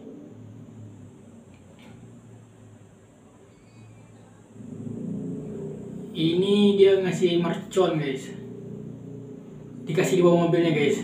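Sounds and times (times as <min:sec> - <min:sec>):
car engine rumbling: 0:04.4 - 0:11.0.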